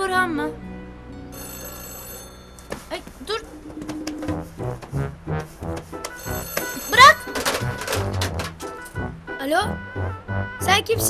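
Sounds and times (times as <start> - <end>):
mobile phone ringing: 1.3 - 4.6, 6.0 - 8.2.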